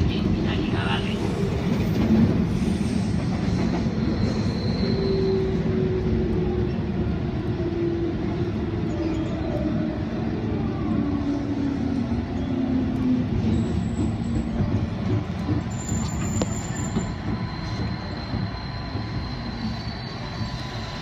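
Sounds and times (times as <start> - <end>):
train wheels rumbling: 0.0 - 21.0.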